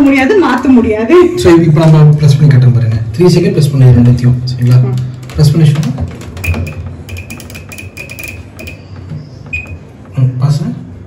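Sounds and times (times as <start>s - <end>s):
short high-pitched beeps: 9.5s - 9.9s.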